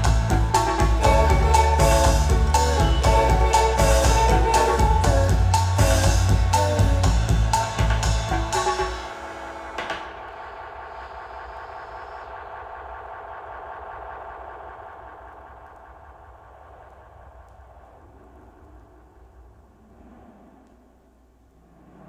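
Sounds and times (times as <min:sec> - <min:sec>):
mechanical hum: 0:00.0 - 0:22.0.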